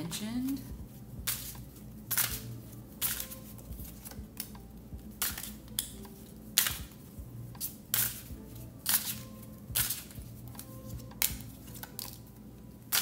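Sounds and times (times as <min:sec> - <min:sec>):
cards being shuffled by hand: 0:00.4 - 0:12.3.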